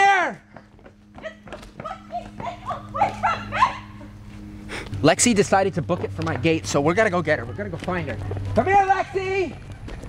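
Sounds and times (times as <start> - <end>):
running footsteps on pavement: 0.0 - 10.0
steady low hum: 0.1 - 10.0
distant yelps: 1.2 - 4.2.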